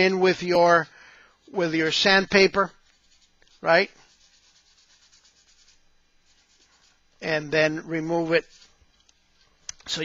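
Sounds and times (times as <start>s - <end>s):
sandpaper rubbing on plastic: 1.4s - 7.3s, 8.0s - 8.9s.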